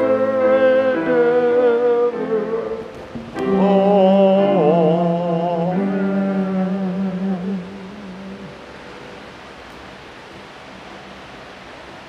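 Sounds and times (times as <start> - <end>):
choir holding a chord: 0.0 - 8.6
room hiss: 0.0 - 12.0.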